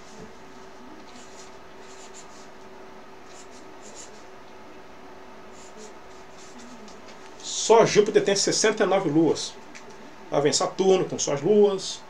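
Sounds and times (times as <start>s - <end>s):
marker scratching on paper: 1.0s - 2.5s, 3.2s - 4.3s, 5.5s - 7.0s.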